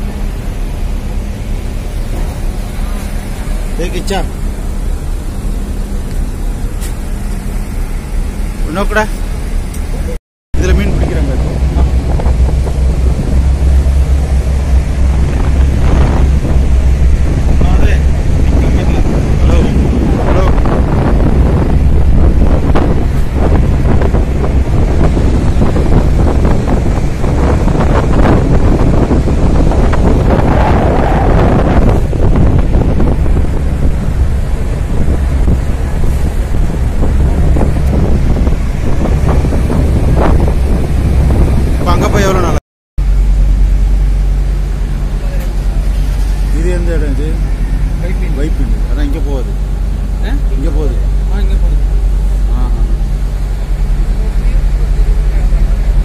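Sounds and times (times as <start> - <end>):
ship engine rumble: 0.0 - 56.0
wind buffeting microphone: 0.0 - 56.0.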